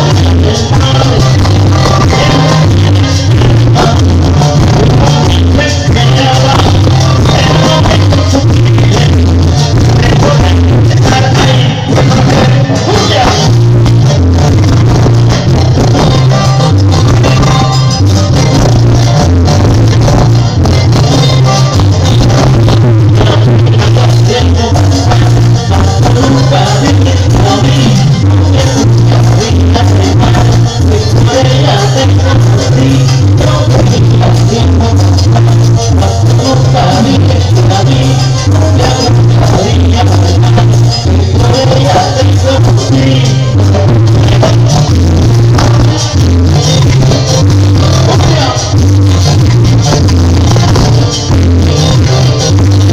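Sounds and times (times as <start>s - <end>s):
heavy bass line: 0.0s - 52.9s
keyboards: 0.0s - 52.9s
latin percussion: 0.0s - 52.9s
live band playing loud: 0.0s - 52.9s.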